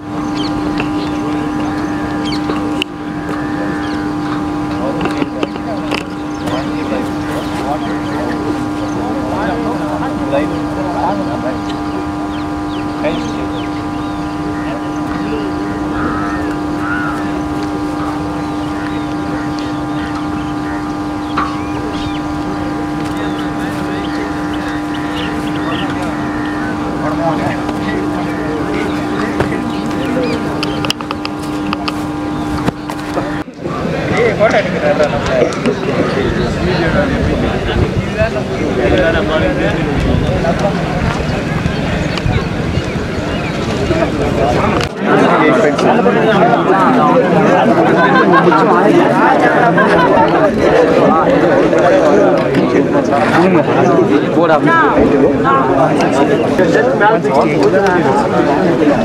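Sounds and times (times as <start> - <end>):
scattered short sounds: 0.0 - 54.9
faint voices: 0.0 - 59.0
noisy outdoor background: 0.0 - 59.0
steady low hum: 0.0 - 59.0
steady low motor drone: 0.0 - 59.0.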